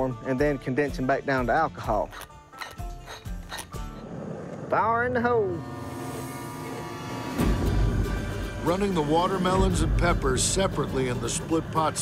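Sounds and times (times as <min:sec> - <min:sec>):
background music with held tones: 0:05.4 - 0:12.0.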